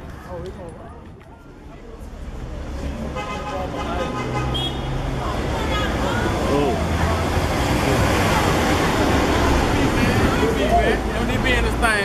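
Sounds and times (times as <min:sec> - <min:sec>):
cars passing: 0:01.5 - 0:12.0.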